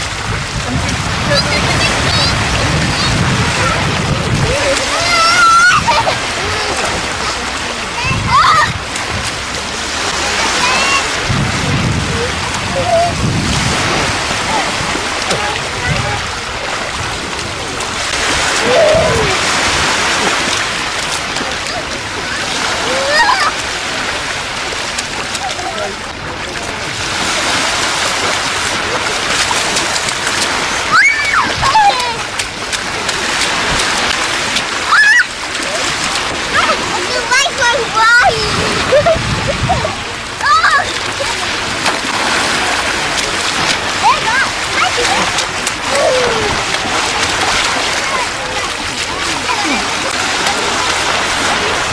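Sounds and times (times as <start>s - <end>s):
small waves washing in: 0.0s - 51.9s
wind rumbling on microphone: 0.0s - 51.9s
child squealing and laughing: 4.9s - 6.6s, 12.7s - 13.2s, 18.6s - 19.4s, 22.8s - 23.6s, 30.9s - 32.2s, 34.9s - 35.3s.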